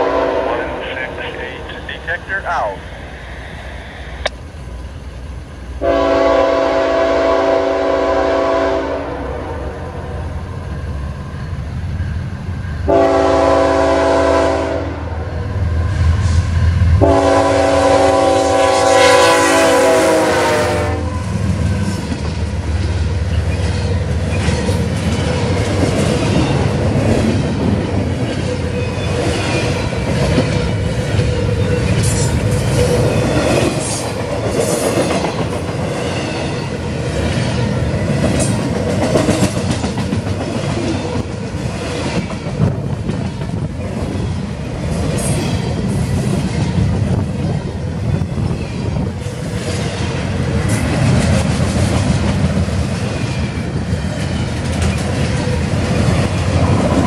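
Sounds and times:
locomotive air horn blasts: 0.0s - 0.6s, 5.8s - 9.3s, 12.9s - 15.1s, 17.0s - 21.1s
train wheels clattering on rails: 21.2s - 57.0s.

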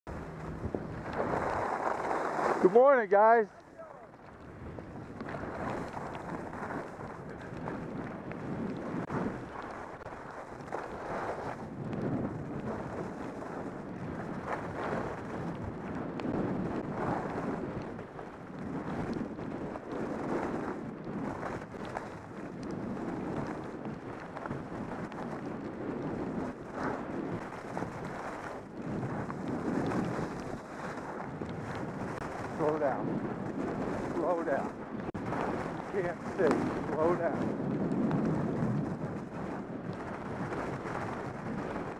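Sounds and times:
wind rushing over microphone: 0.1s - 41.9s
skis hissing on snow: 1.2s - 2.8s.

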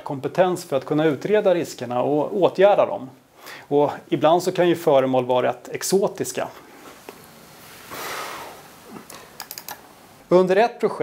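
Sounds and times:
soft hiss: 0.0s - 11.0s
computer mouse clicks: 9.1s - 9.8s.

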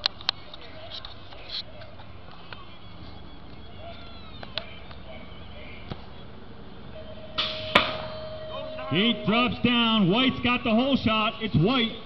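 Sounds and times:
faint distant voices: 0.0s - 7.4s.

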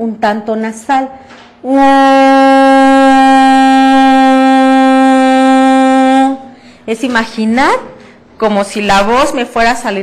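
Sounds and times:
woman singing steady oo vowel: 1.6s - 6.6s.

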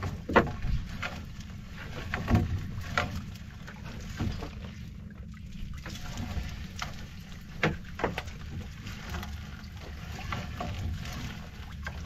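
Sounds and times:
net and water slapping hull: 0.0s - 12.0s.

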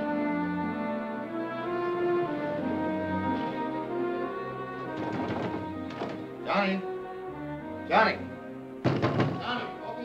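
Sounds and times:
orchestral brass and strings: 0.0s - 10.0s.

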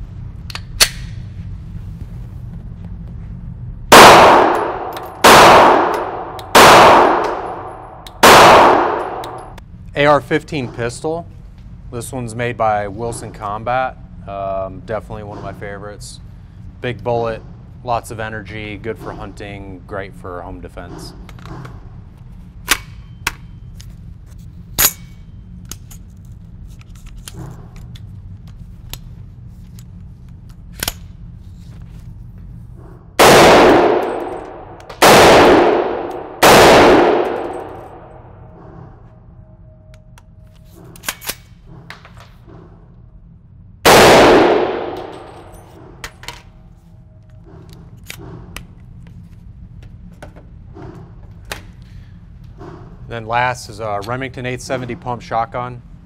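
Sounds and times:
loud gunshots echoing indoors: 3.9s - 9.6s, 33.2s - 39.0s, 43.8s - 46.0s.

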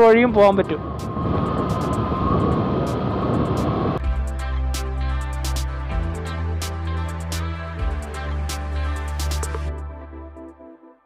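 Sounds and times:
thin steady whine: 0.0s - 4.0s
wind and road noise: 0.0s - 4.0s.

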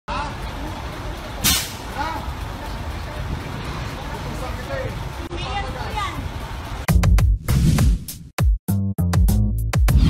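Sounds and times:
truck idling: 0.1s - 6.9s
loud air hiss: 1.4s - 1.8s
man talking: 4.2s - 5.2s.

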